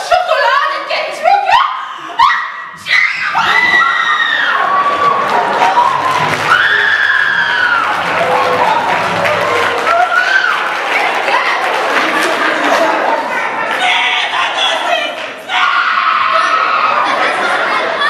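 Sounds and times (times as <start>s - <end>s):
din of many voices: 0.0s - 18.0s.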